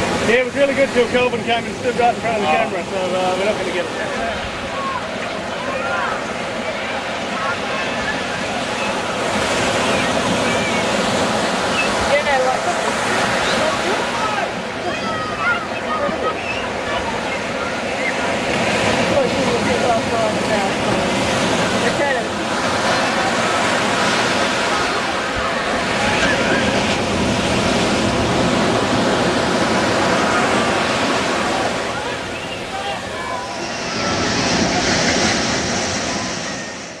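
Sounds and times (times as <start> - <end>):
people's voices and calls: 0.0 - 37.0
surf washing on beach: 0.0 - 37.0.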